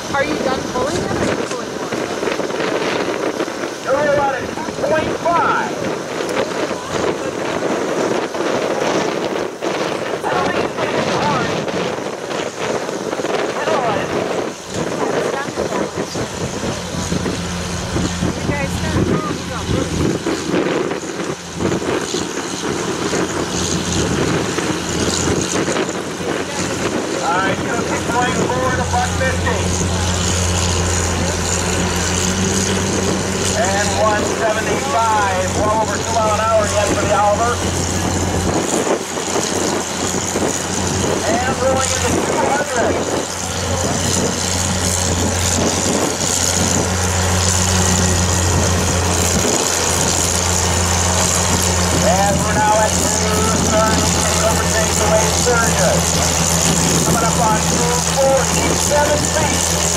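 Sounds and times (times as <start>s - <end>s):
tractor engine droning under load: 0.0s - 59.9s.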